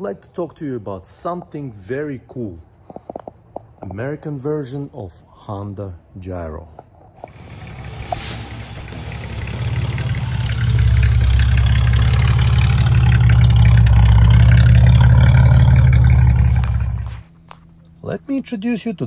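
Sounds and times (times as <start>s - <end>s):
deep low rumble: 7.3s - 17.3s.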